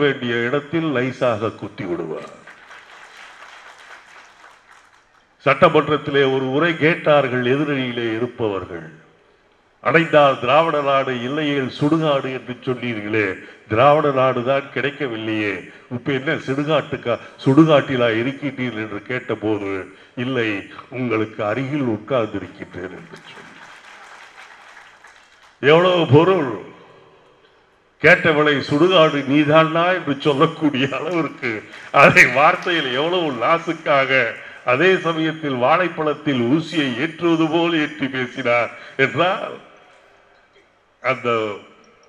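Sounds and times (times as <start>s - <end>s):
audience applauding: 2.3s - 5.3s, 23.0s - 25.6s, 31.0s - 34.4s.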